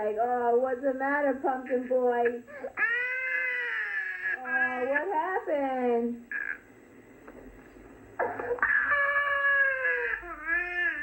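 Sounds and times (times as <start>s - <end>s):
toddler crying: 2.8s - 5.0s, 8.5s - 11.0s.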